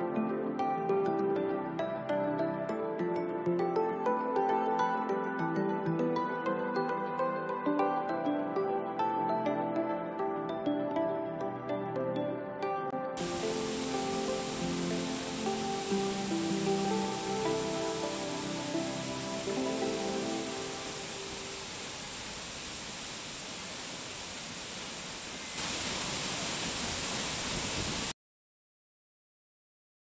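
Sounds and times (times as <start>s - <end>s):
soft gentle music: 0.0s - 22.1s
waterfall rushing: 13.2s - 28.1s.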